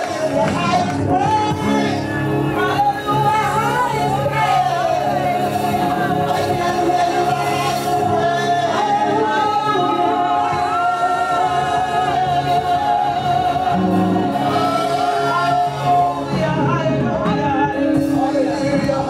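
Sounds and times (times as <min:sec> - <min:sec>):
woman singing gospel: 0:00.0 - 0:19.0.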